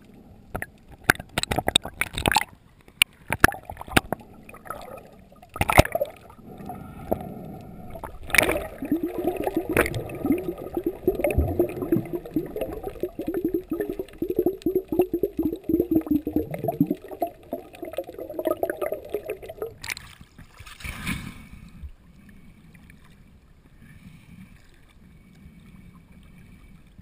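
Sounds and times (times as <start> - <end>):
underwater bubbles gurgling: 3.3 - 20.0.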